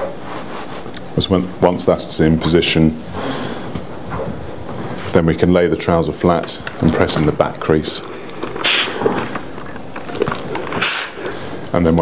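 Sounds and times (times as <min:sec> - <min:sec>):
steam iron hiss: 0:10.8 - 0:11.4.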